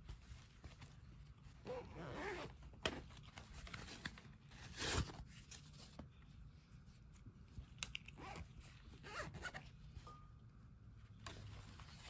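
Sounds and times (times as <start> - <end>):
zipper being pulled open: 1.6 - 2.5, 9.0 - 9.6.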